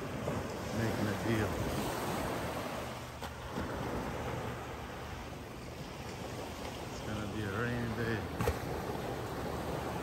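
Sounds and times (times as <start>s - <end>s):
surf washing on beach: 0.0s - 10.0s.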